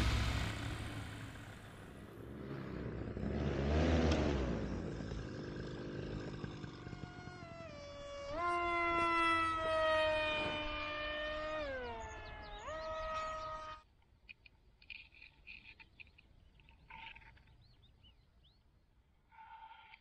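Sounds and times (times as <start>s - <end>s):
paramotor engine revving: 0.0s - 13.8s
faint short chirping calls: 6.1s - 13.9s.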